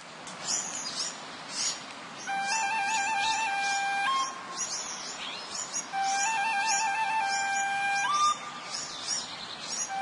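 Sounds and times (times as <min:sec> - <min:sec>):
small songbird chirping: 0:00.4 - 0:10.0
flute-like melody: 0:02.2 - 0:05.0, 0:05.7 - 0:08.9, 0:09.8 - 0:10.0.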